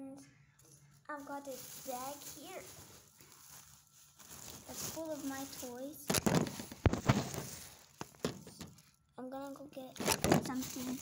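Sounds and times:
plastic bag rustling: 0.6s - 11.0s.

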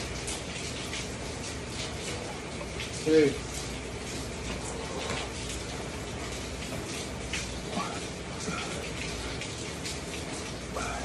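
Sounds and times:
heavy rain pouring: 0.0s - 11.0s.

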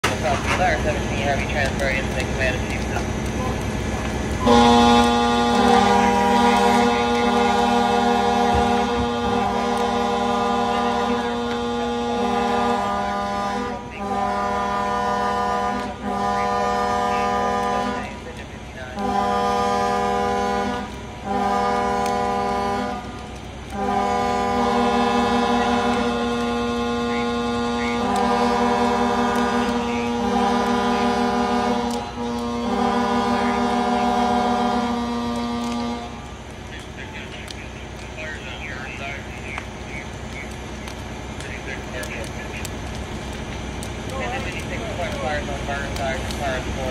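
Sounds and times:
fire truck air horns blasting: 0.0s - 46.9s.

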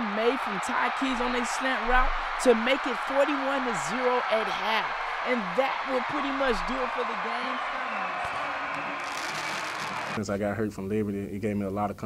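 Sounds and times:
stadium crowd cheering: 0.0s - 10.2s.

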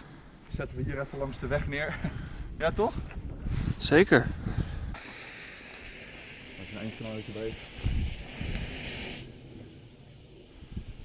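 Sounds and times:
smoke grenade hissing: 4.9s - 11.0s.

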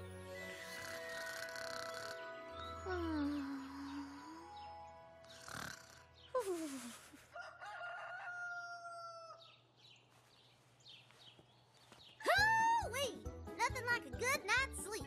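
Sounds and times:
soft music: 0.0s - 7.1s, 12.2s - 15.0s
rooster crowing: 7.3s - 9.6s.

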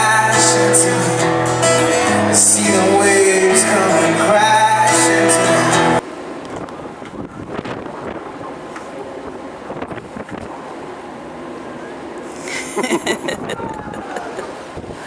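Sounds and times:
singer and band playing: 0.0s - 6.0s
wind buffeting microphone: 6.4s - 10.6s, 13.2s - 15.0s.

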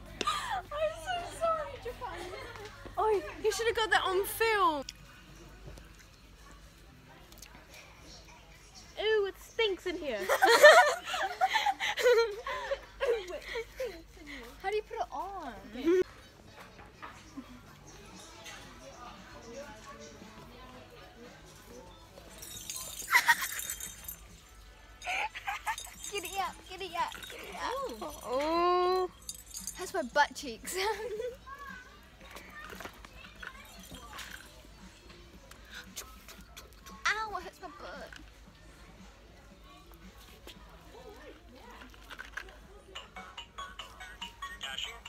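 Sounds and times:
young women laughing and exclaiming: 0.1s - 4.8s, 10.0s - 14.8s, 22.8s - 24.2s, 25.0s - 29.1s, 29.7s - 31.6s.

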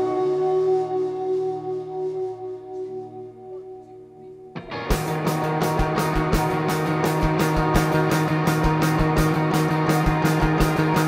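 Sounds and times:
electric guitar notes ringing: 0.0s - 11.0s
rock band playing loud: 4.6s - 11.0s.

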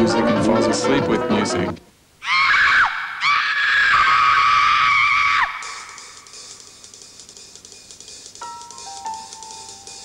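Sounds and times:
high-pitched screams: 2.2s - 6.0s.

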